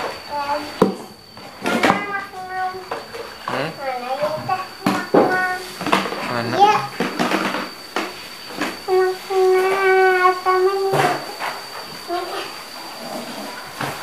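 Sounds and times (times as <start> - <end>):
young child vocalising: 3.5 - 7.1
plastic toys knocking: 4.2 - 8.8.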